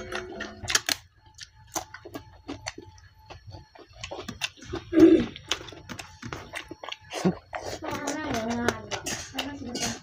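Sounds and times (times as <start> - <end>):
person chewing: 0.0 - 9.9.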